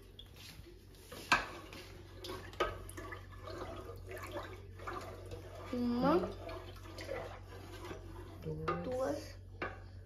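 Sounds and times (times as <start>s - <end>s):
spoon scraping and clinking on a pot: 1.1s - 10.0s.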